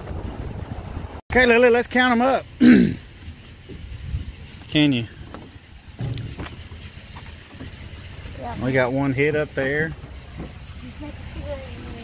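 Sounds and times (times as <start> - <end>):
low engine-like rumble: 0.0 - 12.0.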